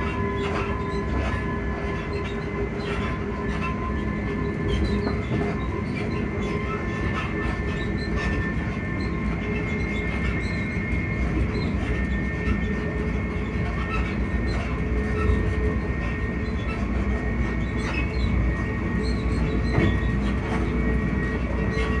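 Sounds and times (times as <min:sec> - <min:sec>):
traction motor whine: 0:00.0 - 0:22.0
wheels rumbling on rail: 0:00.0 - 0:22.0.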